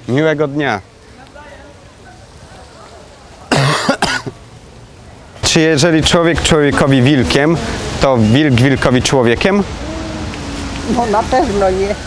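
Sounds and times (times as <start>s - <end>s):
person coughing: 3.5s - 4.4s.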